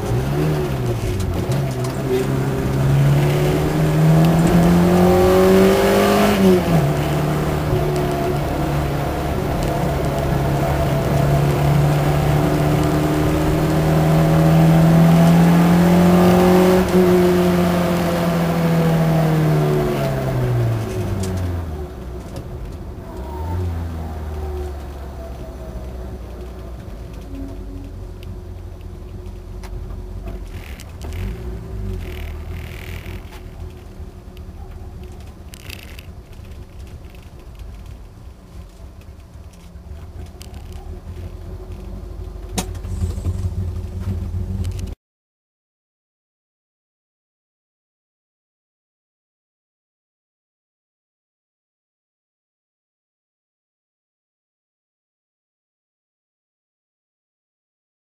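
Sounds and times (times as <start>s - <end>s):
car engine accelerating: 0.0s - 45.0s.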